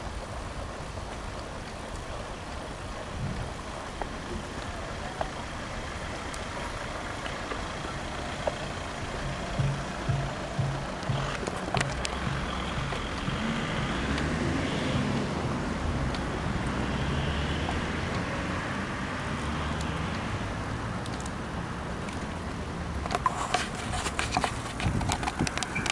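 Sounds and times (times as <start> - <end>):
wind noise: 0.0 - 16.6, 23.1 - 25.9
road traffic: 0.0 - 25.9
wheels rolling: 0.0 - 25.9
rhythmic low thumping: 7.6 - 14.5.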